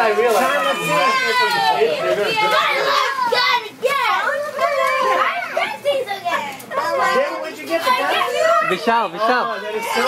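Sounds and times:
children and women chattering: 0.0s - 10.0s.

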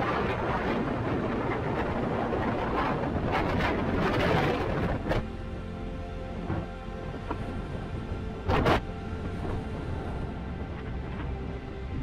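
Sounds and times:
wind gusting across microphone: 0.0s - 12.0s.

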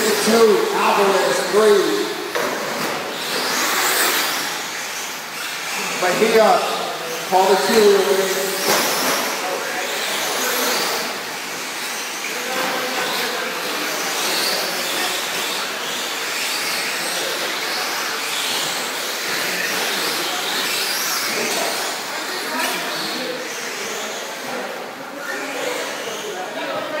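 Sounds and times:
people talking: 0.0s - 2.8s, 5.7s - 15.9s, 16.9s - 27.0s
electric toy trucks running: 0.0s - 26.6s.

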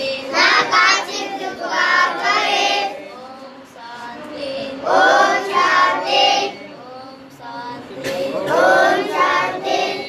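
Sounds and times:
young children singing: 0.0s - 10.0s.

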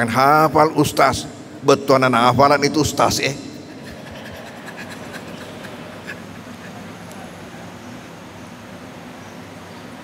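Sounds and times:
low background hum: 0.0s - 10.0s
faint laughter: 3.6s - 7.5s.

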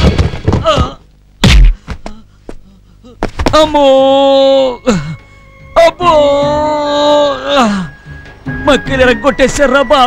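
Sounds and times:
body thudding on floor: 0.0s - 2.1s.

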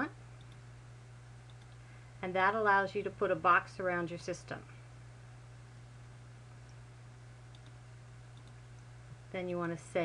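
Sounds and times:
low electrical hum: 0.0s - 10.0s
faint computer mouse clicks: 0.4s - 0.6s, 1.4s - 1.8s, 7.5s - 8.9s.

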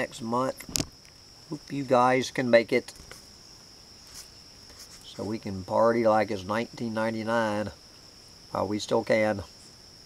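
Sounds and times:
crickets trilling: 0.0s - 10.0s
faint brief rustle: 4.0s - 5.1s.

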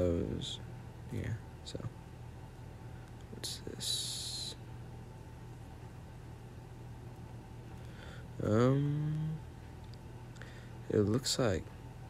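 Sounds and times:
low room hum: 0.0s - 12.0s
person speaking word: 3.4s - 4.6s, 8.4s - 9.4s, 10.9s - 11.7s.

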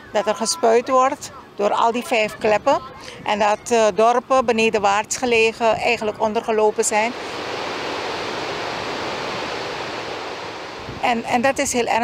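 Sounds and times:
water rushing through spillway: 7.1s - 11.4s.

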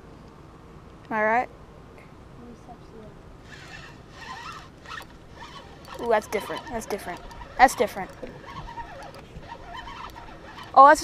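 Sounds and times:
fishing reel whirring: 3.4s - 11.0s.

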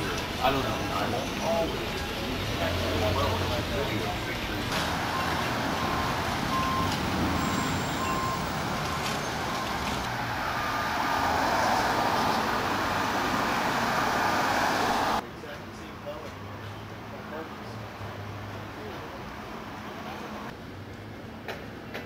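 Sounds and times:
passing cars: 0.0s - 15.2s.

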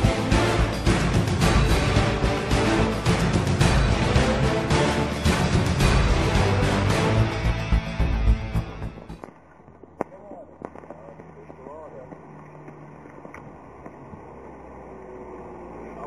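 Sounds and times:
title music: 0.0s - 9.2s
firework pops and crackles: 9.1s - 14.2s.

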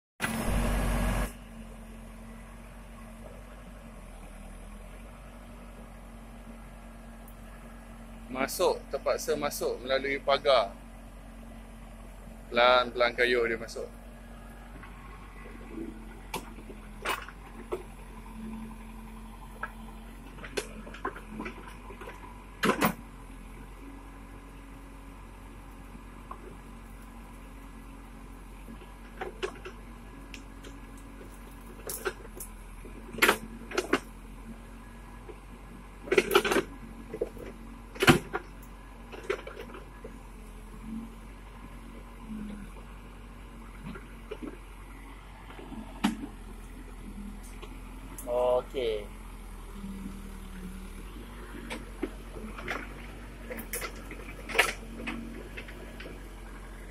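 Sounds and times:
backhoe engine hum: 0.2s - 56.9s.

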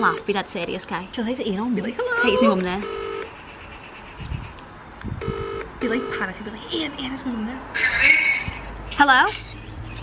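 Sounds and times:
phone ringback tone: 2.3s - 3.3s, 5.2s - 6.3s.

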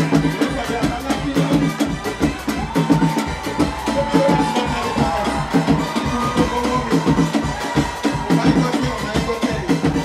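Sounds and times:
hand drums and drum kit beat: 0.0s - 10.0s
live band playing dance music: 0.0s - 10.0s.

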